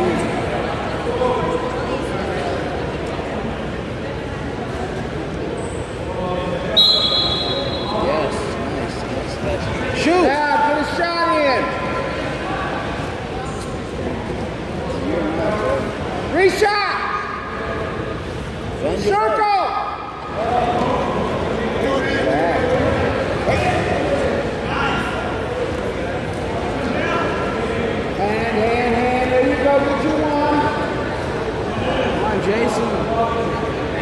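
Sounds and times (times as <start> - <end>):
gym hall hubbub: 0.0 - 34.0.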